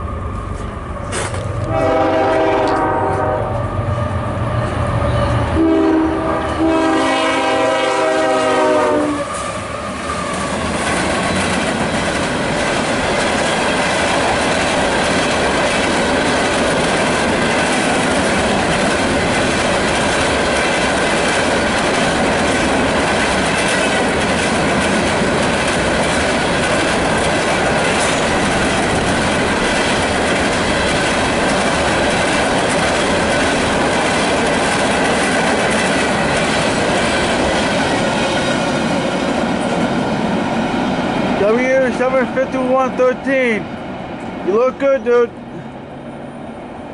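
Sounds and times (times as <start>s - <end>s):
freight train passing: 0.0s - 46.9s
steel wheels clattering on rails: 10.3s - 40.0s.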